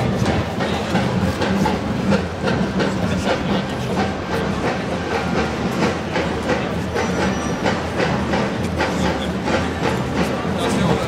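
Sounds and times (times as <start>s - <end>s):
loud outdoor din: 0.0s - 11.0s
sharp clicks and clacks: 0.0s - 11.0s.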